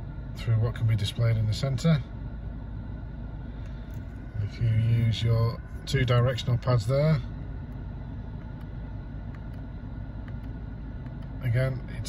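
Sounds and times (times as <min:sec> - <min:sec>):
low rumble in car cabin: 0:00.0 - 0:12.0.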